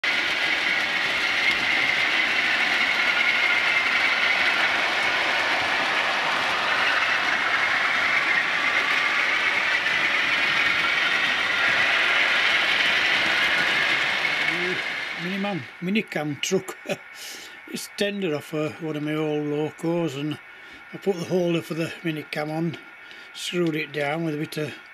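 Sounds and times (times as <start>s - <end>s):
model train wheels on rails: 0.0s - 24.9s.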